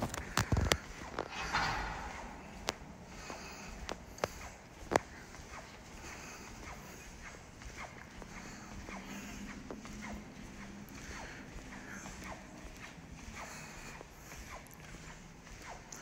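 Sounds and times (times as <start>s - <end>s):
faint footsteps in corridor: 0.0s - 16.0s.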